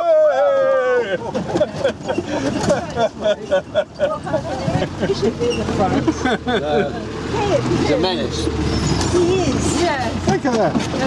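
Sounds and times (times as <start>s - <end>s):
people's voices: 0.0s - 11.0s
off-road vehicle engine running: 1.2s - 11.0s.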